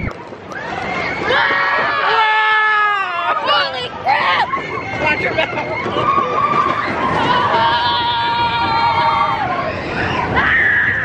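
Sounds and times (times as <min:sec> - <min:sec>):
roller coaster train moving: 0:00.0 - 0:11.0.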